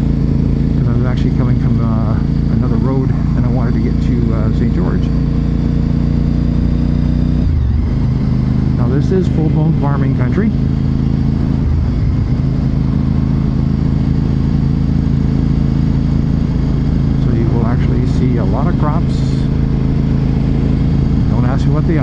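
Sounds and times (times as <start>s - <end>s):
motorcycle engine cruising: 0.0s - 22.0s.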